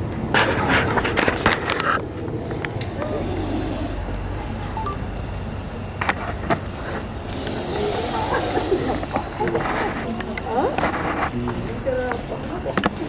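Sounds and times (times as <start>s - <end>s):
low steady rumble: 0.0s - 13.0s
murmur of voices: 2.2s - 6.0s, 6.6s - 13.0s.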